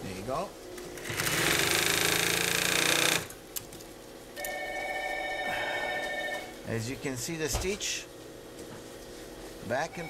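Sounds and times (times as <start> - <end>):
industrial sewing machine stitching: 1.0 - 3.3.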